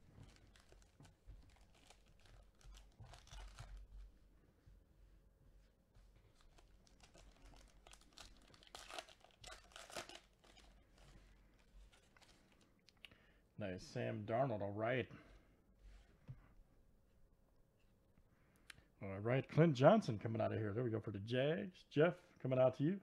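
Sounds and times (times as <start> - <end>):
wrapper crinkling and tearing: 0.0 - 3.9, 6.3 - 12.7.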